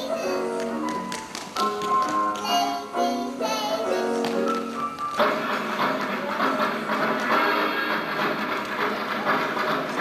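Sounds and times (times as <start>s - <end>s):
music playing: 0.0s - 10.0s
tap shoes clicking: 0.6s - 2.7s.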